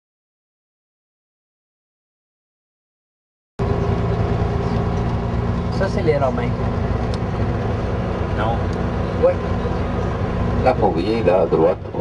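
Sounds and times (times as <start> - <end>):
engine and road rumble: 3.6 - 12.0.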